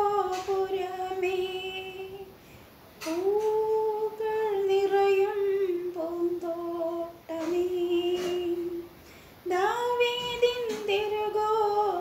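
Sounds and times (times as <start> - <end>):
woman singing unaccompanied: 0.0 - 2.4, 3.0 - 12.0.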